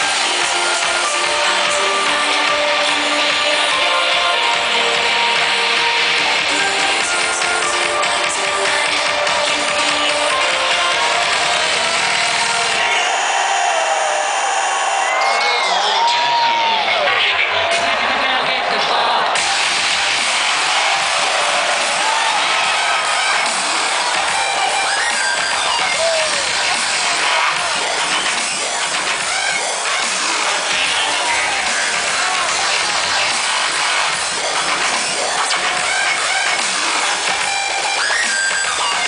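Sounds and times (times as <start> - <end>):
crowd shouting and cheering: 0.0 - 39.0
electronic dance music: 0.0 - 39.0.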